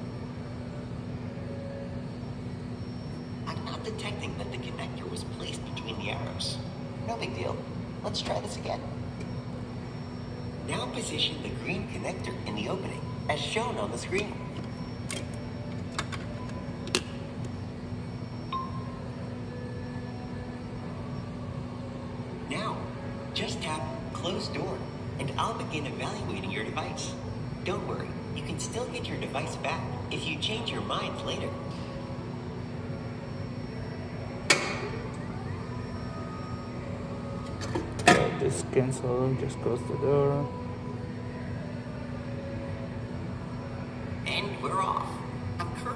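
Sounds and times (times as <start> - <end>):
steady low hum: 0.0 - 45.9
electronic chime: 18.4 - 19.5.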